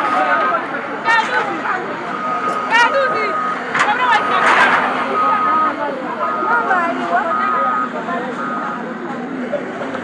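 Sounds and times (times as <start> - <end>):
people talking: 0.0 - 10.0
reversing alarm beeping: 2.1 - 9.0.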